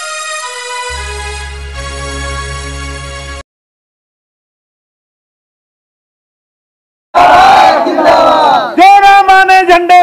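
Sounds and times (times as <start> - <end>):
crowd of men shouting: 7.2 - 10.0
man shouting a long call: 7.2 - 10.0.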